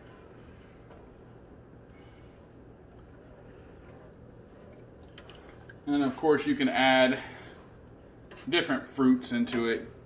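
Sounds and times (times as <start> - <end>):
faint liquid sounds: 0.0 - 8.6
steady low hum: 0.0 - 10.0.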